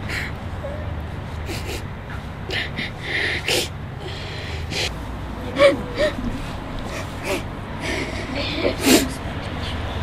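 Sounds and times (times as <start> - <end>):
sharp breath: 2.5 - 5.0
voiced sob: 2.5 - 9.3
boy crying: 5.5 - 9.2.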